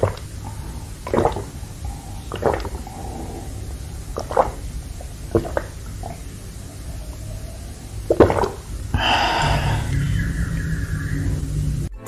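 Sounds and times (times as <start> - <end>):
low rumble with falling whine: 0.0 - 12.0.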